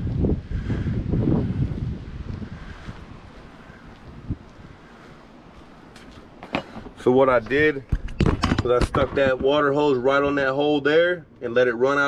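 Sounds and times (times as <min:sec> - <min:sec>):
wind buffeting microphone: 0:00.0 - 0:10.4.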